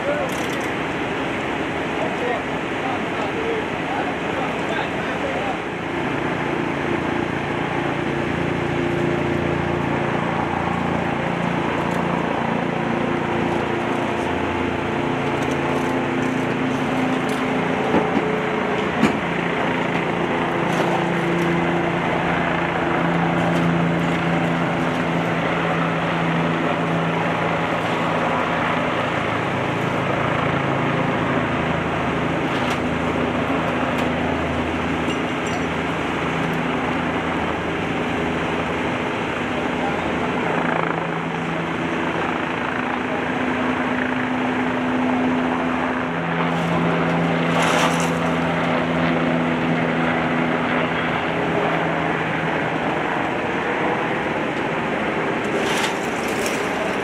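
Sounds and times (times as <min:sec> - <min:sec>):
diesel engine running: 0:00.0 - 0:43.2.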